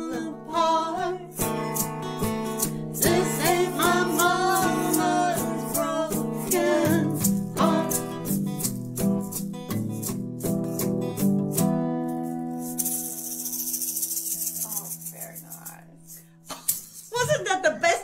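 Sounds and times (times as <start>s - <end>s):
acoustic guitars strumming: 0.0s - 17.5s
egg shaker rattling: 11.9s - 17.2s.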